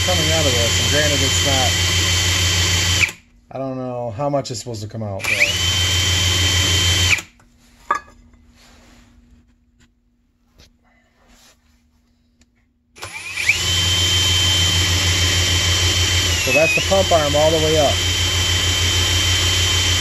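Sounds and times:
electric drill spinning: 0:00.0 - 0:03.2, 0:05.2 - 0:07.3, 0:13.0 - 0:20.0.

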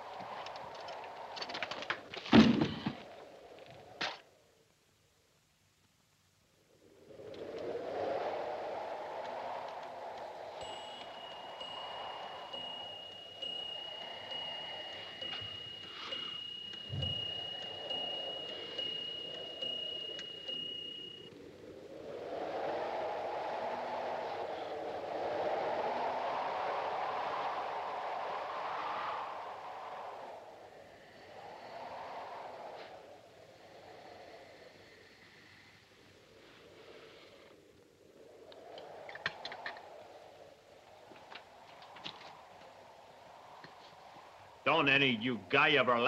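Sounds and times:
wind howling in gusts: 0:00.0 - 0:04.8, 0:06.5 - 0:46.0
thin high whistle: 0:08.2 - 0:21.6.

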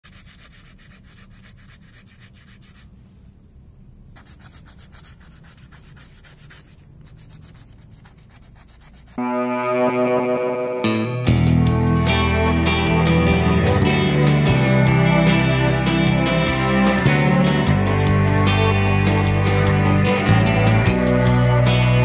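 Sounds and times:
hand rubbing scraping strokes: 0:00.0 - 0:03.4, 0:04.2 - 0:09.2
loud guitar music: 0:09.2 - 0:22.0.

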